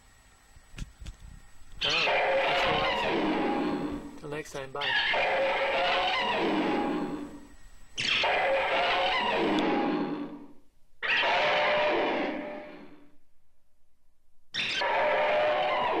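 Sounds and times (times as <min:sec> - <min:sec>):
shrieking monster call: 0:01.8 - 0:04.1, 0:04.8 - 0:07.4, 0:08.0 - 0:13.1, 0:14.6 - 0:16.0.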